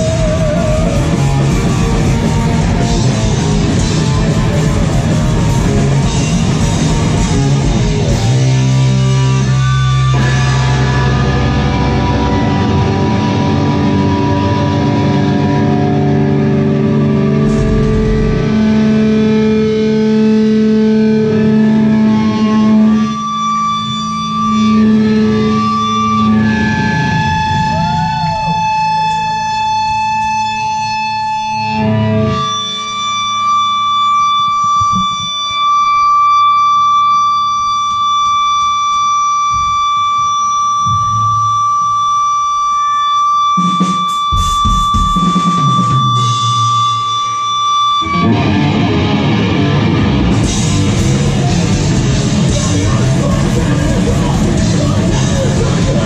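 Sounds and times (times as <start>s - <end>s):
distorted electric guitar chords: 0.0s - 56.0s
high held tone: 0.0s - 56.0s.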